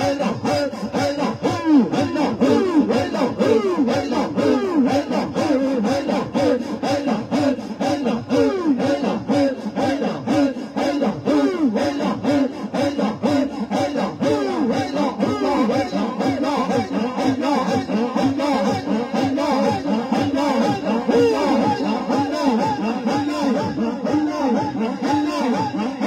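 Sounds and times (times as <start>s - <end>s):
group chanting: 0.0s - 26.0s.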